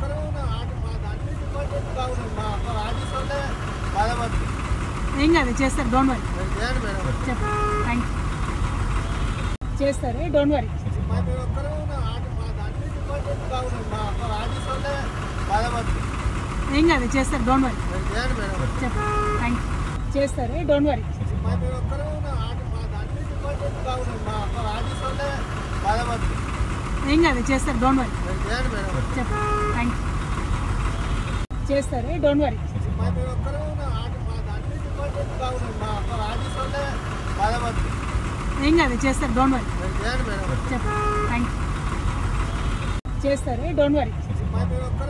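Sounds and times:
people talking: 0:00.0 - 0:04.4, 0:05.1 - 0:08.1, 0:09.8 - 0:16.0, 0:16.7 - 0:26.4, 0:27.0 - 0:30.0, 0:31.7 - 0:37.8, 0:38.6 - 0:41.5, 0:43.2 - 0:45.0
vehicle engines idling: 0:00.0 - 0:45.0.

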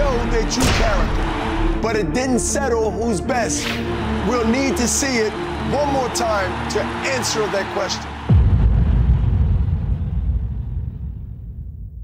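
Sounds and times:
deep boom rumble: 0:08.3 - 0:12.0.

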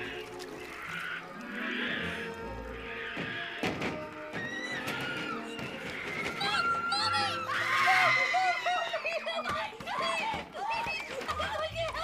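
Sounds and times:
orchestral film score: 0:00.0 - 0:12.0
people screaming: 0:04.3 - 0:10.8
loud panicked shout: 0:06.2 - 0:11.6.

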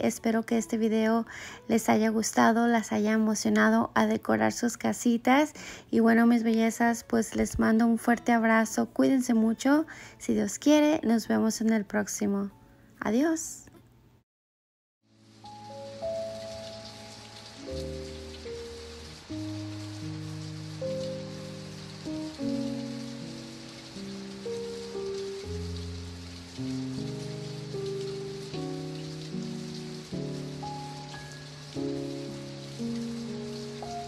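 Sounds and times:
soft instrumental music: 0:00.0 - 0:12.9, 0:15.1 - 0:34.0
rain patter: 0:15.1 - 0:34.0.

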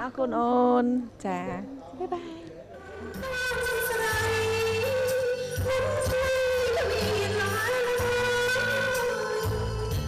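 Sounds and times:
woman singing into microphone: 0:02.8 - 0:10.0.

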